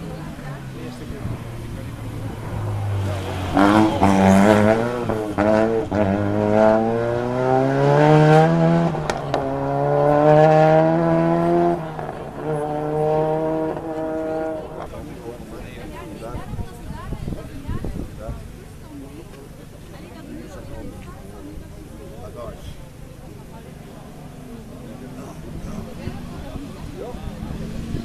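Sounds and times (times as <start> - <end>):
rally car engine accelerating: 0.0 - 15.4.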